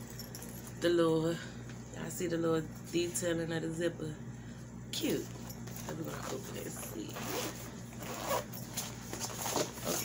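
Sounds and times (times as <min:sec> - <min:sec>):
zipper being pulled open: 0:07.1 - 0:10.0.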